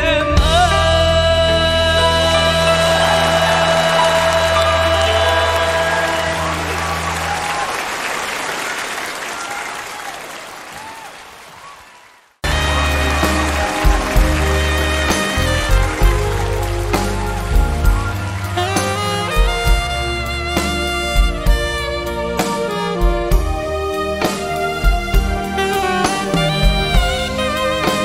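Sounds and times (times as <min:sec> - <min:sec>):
band playing a bolero intro: 0:00.0 - 0:08.0, 0:12.4 - 0:28.0
live band holding a chord: 0:00.0 - 0:08.4, 0:12.4 - 0:28.0
audience applause: 0:02.6 - 0:19.8.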